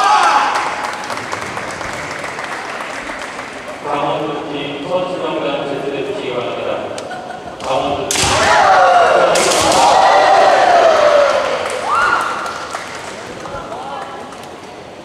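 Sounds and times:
people shouting: 0.0s - 0.6s, 8.1s - 12.4s
sharp impacts: 7.7s - 10.2s.

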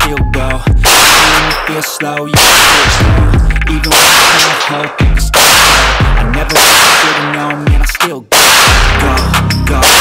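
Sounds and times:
pistol shots ringing: 0.8s - 1.8s, 2.4s - 3.2s, 3.9s - 7.6s, 8.3s - 9.2s.

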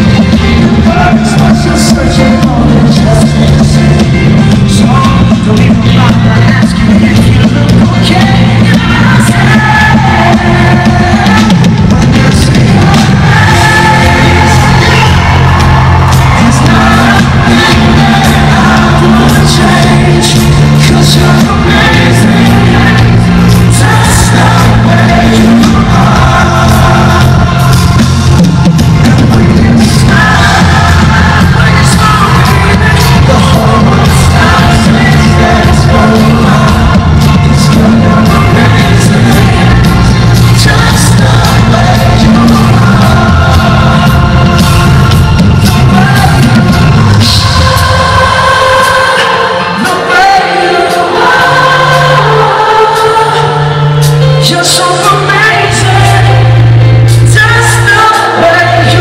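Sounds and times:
live pop band playing a ballad: 0.0s - 59.0s
man singing: 0.0s - 59.0s.

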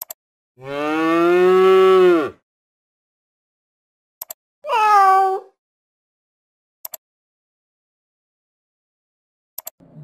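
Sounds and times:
quick clicks: 0.0s - 0.2s, 4.2s - 4.4s, 6.8s - 7.0s, 9.6s - 9.8s
cow mooing: 0.6s - 2.4s.

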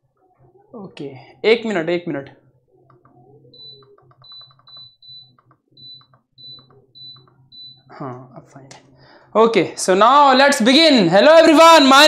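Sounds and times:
power inverter alarm beeping: 3.6s - 8.0s.

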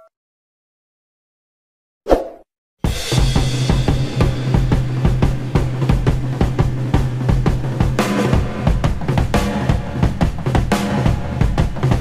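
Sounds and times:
music with drum beat and bass: 2.8s - 12.0s.

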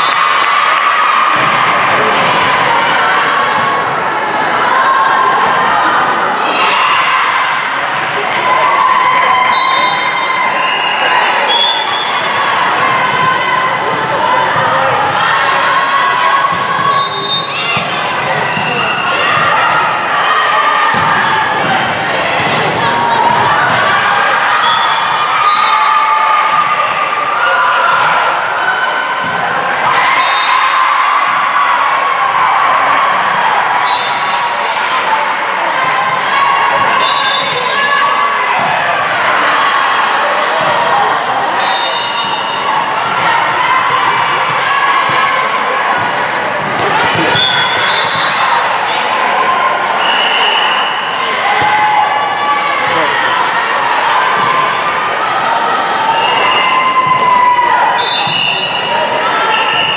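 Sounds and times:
din of many voices: 0.0s - 59.9s
players calling out and cheering: 0.0s - 59.9s.

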